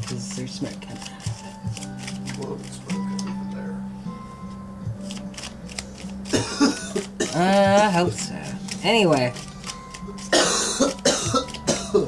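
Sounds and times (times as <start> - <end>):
person coughing: 6.3 - 7.6, 10.3 - 12.0.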